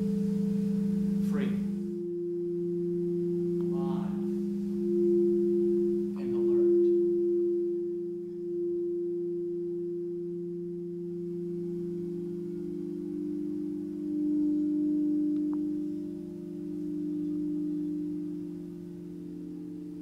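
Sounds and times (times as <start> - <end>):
singing bowls ringing: 0.0 - 20.0.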